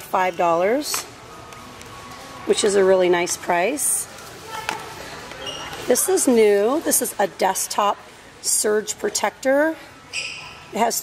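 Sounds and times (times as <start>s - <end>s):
quiet store background: 0.0s - 11.0s.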